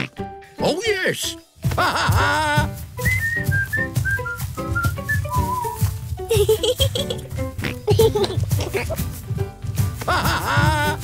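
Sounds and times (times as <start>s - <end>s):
background music with steady beat: 0.0s - 11.0s
whistled melody: 3.0s - 6.4s.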